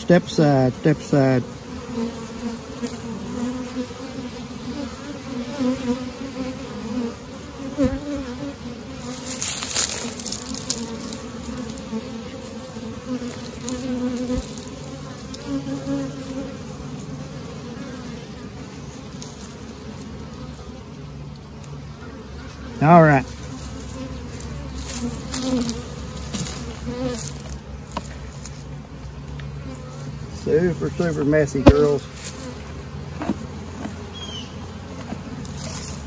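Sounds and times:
honeybees buzzing: 0:00.0 - 0:36.0.

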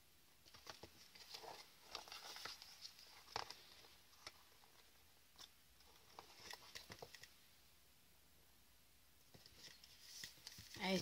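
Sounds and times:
cardstock rustling: 0:09.4 - 0:11.0.

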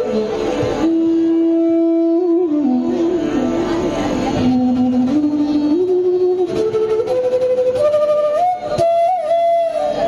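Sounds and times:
bamboo flute slow melody: 0:00.0 - 0:10.0.

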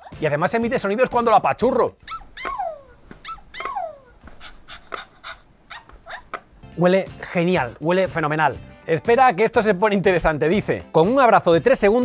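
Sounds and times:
toy puppy yips and whimpers: 0:02.0 - 0:06.5.

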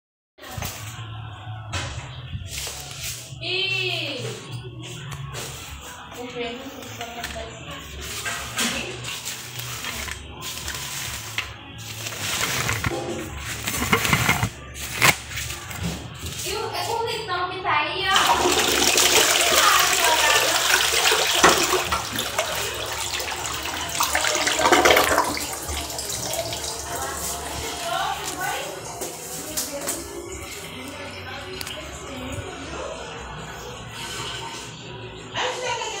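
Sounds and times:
toilet flushing: 0:18.1 - 0:29.5.

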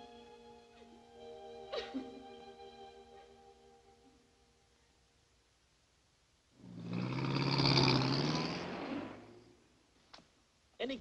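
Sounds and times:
car driving past: 0:06.7 - 0:09.8.

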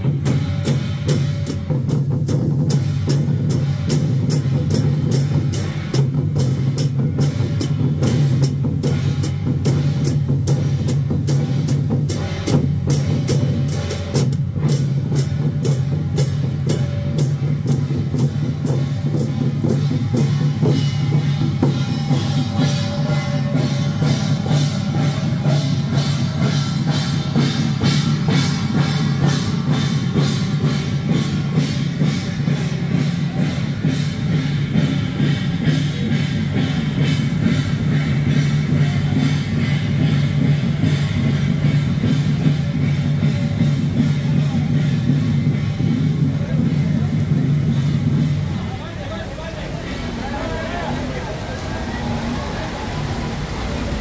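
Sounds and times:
drumming: 0:00.0 - 0:54.0
hand cymbals clashing: 0:00.0 - 0:54.0.

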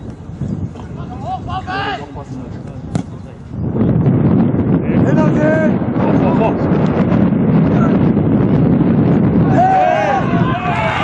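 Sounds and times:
wind buffeting microphone: 0:00.0 - 0:11.0
voices shouting: 0:01.0 - 0:02.2, 0:09.4 - 0:11.0.

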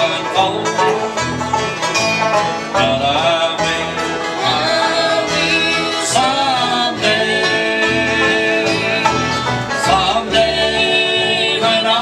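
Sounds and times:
bluegrass band playing: 0:00.0 - 0:12.0.

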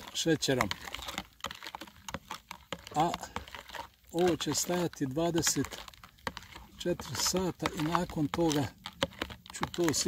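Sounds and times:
metal spoon scraping plastic jug: 0:00.0 - 0:10.0.

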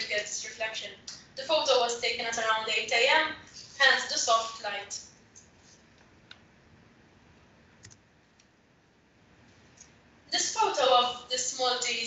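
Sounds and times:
computer mouse click: 0:07.8 - 0:08.5.

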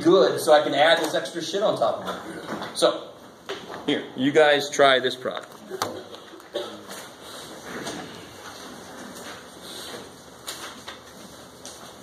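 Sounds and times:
paper rustling: 0:08.2 - 0:12.0.

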